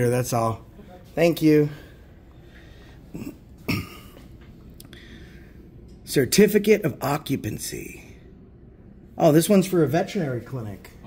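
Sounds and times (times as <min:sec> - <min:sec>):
man clearing his throat: 0:03.1 - 0:04.4.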